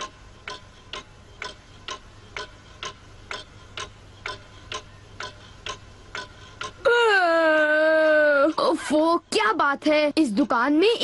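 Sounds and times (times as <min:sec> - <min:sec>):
pendulum clock ticking: 0:00.0 - 0:11.0.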